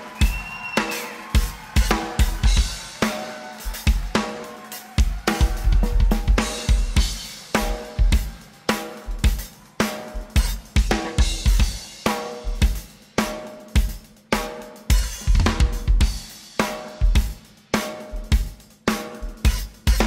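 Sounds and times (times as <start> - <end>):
drum kit playing: 0.0 - 20.0.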